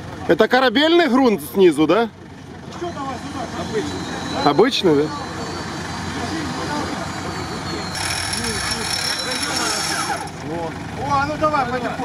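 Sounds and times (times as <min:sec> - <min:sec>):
vehicle engine idling: 0:00.0 - 0:12.0
crowd chatter: 0:01.2 - 0:12.0
high-pitched whine: 0:02.8 - 0:10.4.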